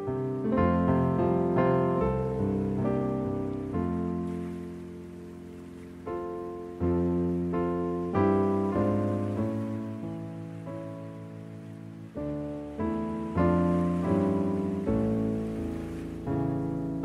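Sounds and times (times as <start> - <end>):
slow piano chords ringing: 0.0 - 17.0.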